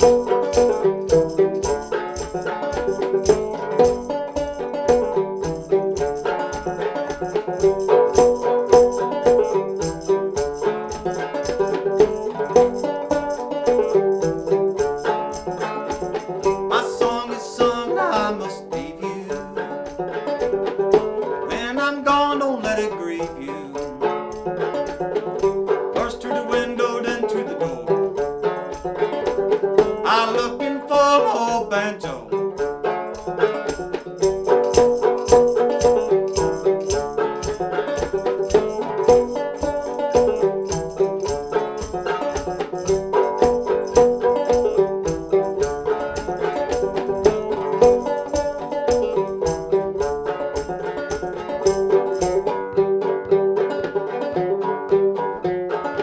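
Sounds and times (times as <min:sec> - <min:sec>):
banjo played clawhammer style: 0:00.0 - 0:56.0.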